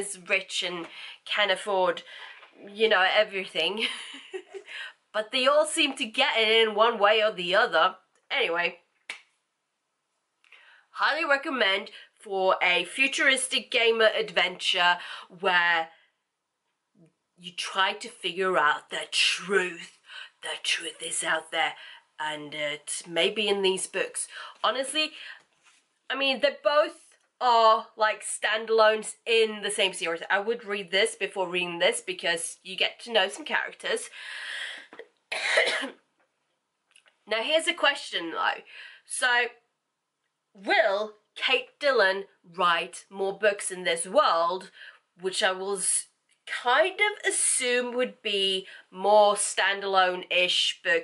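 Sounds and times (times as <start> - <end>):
woman clearing her throat: 35.3 - 35.9.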